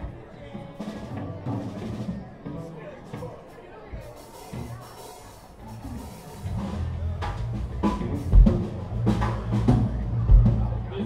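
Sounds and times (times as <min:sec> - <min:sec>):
drums: 0:00.0 - 0:11.0
live band playing: 0:00.0 - 0:11.0
bass guitar: 0:05.8 - 0:11.0.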